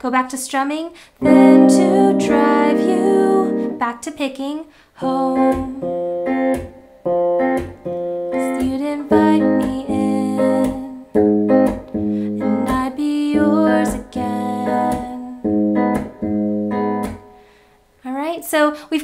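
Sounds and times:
fingerpicked electric guitar: 1.2s - 3.8s, 5.0s - 17.6s.

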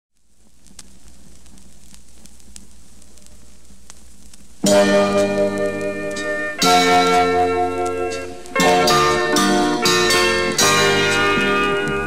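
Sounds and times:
vinyl record clicks: 0.1s - 12.0s
vinyl record crackle: 0.1s - 12.0s.

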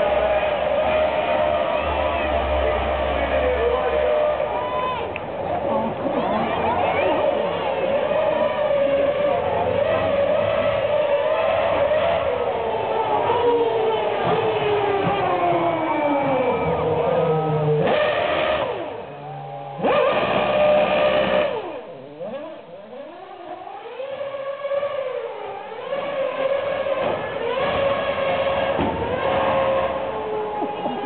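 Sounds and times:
race car engine revving: 0.0s - 31.0s.

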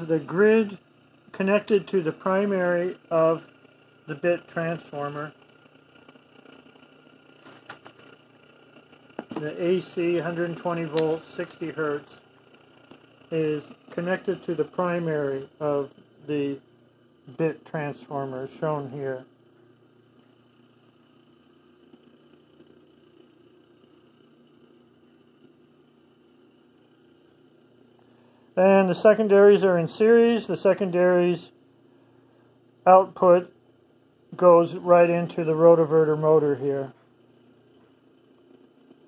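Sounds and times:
faint electrical hum: 0.0s - 39.0s.

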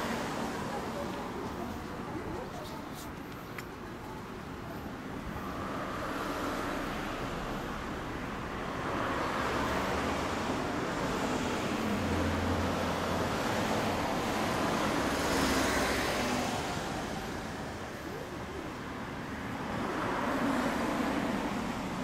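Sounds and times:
vehicles passing: 0.0s - 22.0s.

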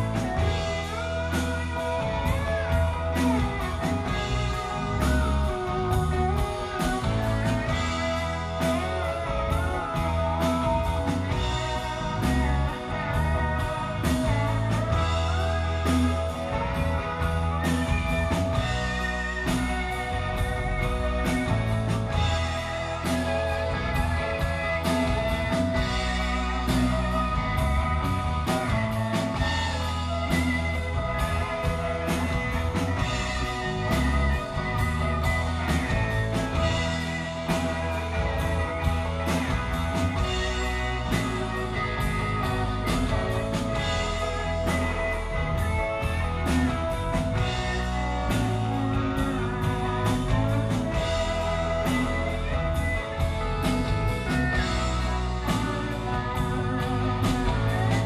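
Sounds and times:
electric guitar: 0.0s - 58.0s
pedal steel guitar: 0.0s - 58.0s
steady drum beat: 0.0s - 58.0s.

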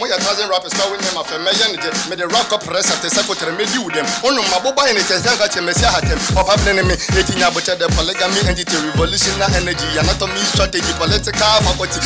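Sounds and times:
rapping over a hip hop beat: 0.0s - 12.0s
deep sliding bass notes: 9.0s - 10.3s.

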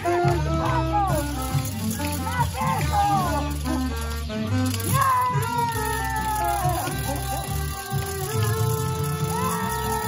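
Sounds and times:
backing track with bass line: 0.0s - 10.0s.

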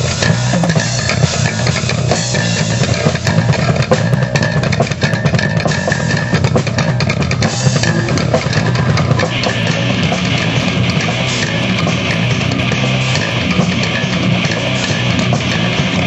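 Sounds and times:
bass guitar: 0.0s - 16.0s
drum kit: 0.0s - 16.0s
electric guitars: 0.0s - 16.0s.

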